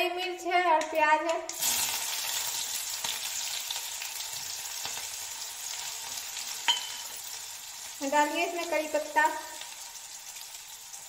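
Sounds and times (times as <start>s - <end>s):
onion sizzling in hot oil: 1.5s - 11.0s.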